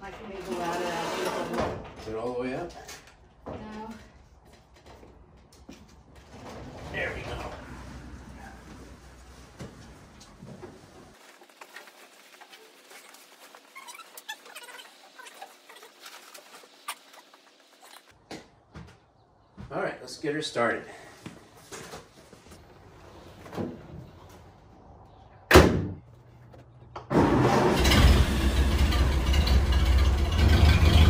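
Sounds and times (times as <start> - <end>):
fabric cover rustling: 8.5 - 18.2.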